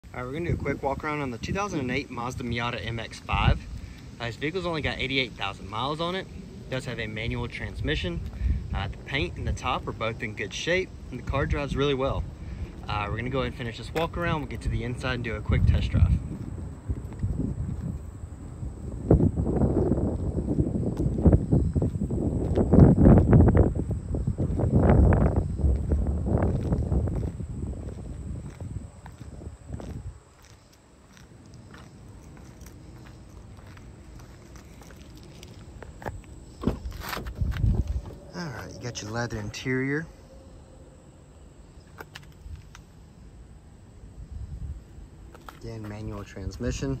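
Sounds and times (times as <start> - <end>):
wind rumbling on microphone: 0.0 - 47.0
footsteps on asphalt: 7.8 - 11.3, 12.2 - 38.3, 41.8 - 42.9, 45.2 - 46.2.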